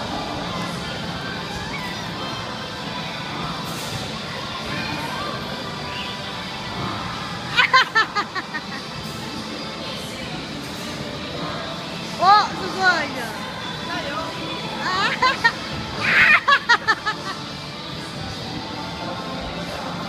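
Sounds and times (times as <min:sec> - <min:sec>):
music playing: 0:00.0 - 0:20.0
play area background noise: 0:00.0 - 0:20.0.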